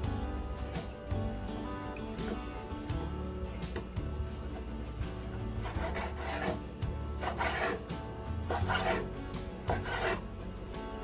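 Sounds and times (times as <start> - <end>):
cleaver cutting on wooden board: 5.6 - 10.3.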